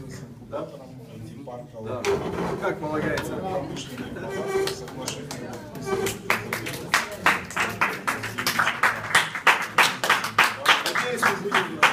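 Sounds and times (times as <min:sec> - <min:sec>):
people clapping: 0:04.6 - 0:11.9.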